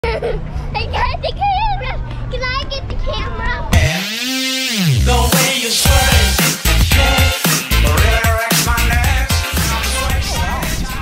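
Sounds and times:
rising electronic tone: 3.8 - 8.0.

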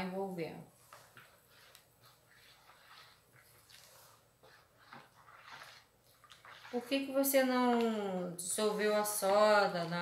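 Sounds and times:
spoon stirring wet mixture: 0.0 - 10.0.

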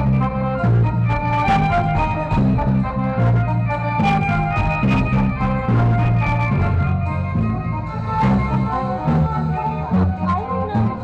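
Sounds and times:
bass line: 0.0 - 11.0
bowed violin melody: 0.0 - 11.0.

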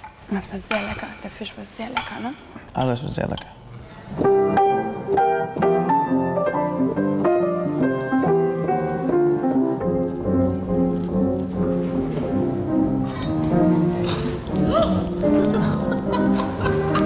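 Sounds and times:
piano music: 4.1 - 17.0.

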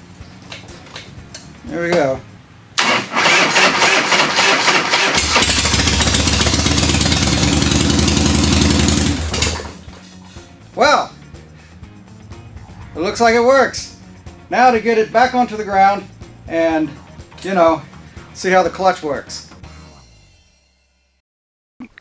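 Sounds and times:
electric starter cranking: 2.8 - 9.9
motorcycle engine running: 5.2 - 10.0.

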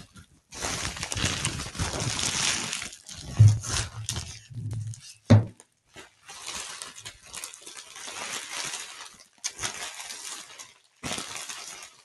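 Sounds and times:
bubble wrap crinkling: 0.0 - 12.0.

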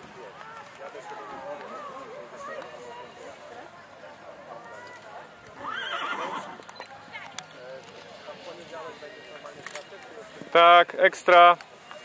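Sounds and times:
horse whinnying: 5.6 - 6.6.

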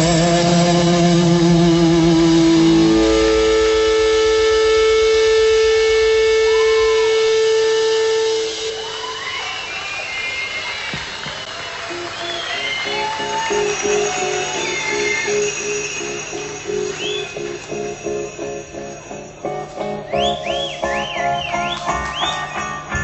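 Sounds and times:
live rock band music: 12.9 - 23.0.

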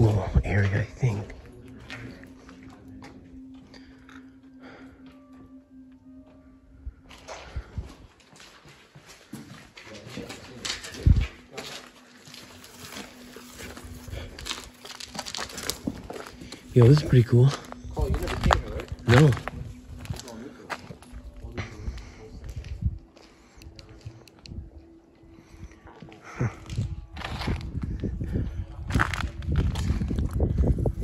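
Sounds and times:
footsteps on debris: 7.1 - 23.9, 26.0 - 30.9.

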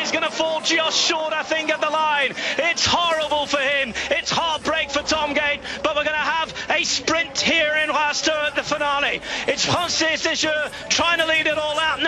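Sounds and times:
man commentating excitedly: 0.0 - 12.0.

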